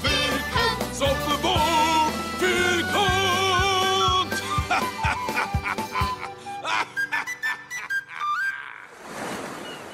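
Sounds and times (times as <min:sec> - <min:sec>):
flute-like whistle melody: 0:04.4 - 0:08.7.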